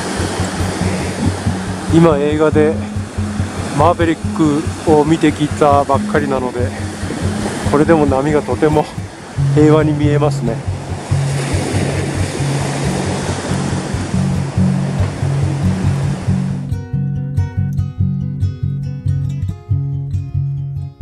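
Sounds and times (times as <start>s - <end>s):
waves breaking on a beach: 0.0s - 16.8s
music with steady bass line: 0.0s - 21.0s
plucked guitar music: 0.0s - 21.0s.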